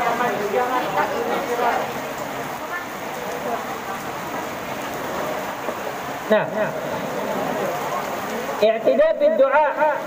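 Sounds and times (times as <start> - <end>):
steady hissing noise: 0.0 - 10.0.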